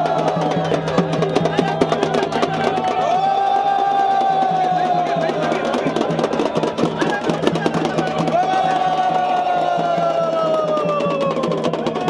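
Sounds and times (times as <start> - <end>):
fast drumbeats: 0.0 - 12.0.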